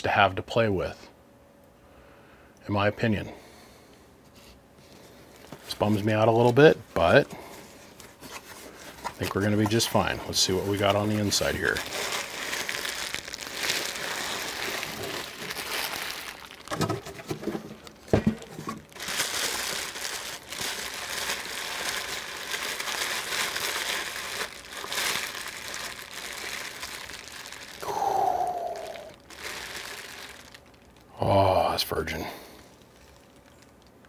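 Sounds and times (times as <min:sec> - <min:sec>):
bubble wrap crinkling: 0:04.8 - 0:34.0.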